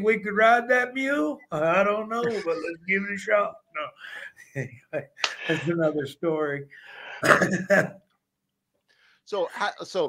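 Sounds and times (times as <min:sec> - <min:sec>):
man laughing heartily: 0:02.2 - 0:02.8.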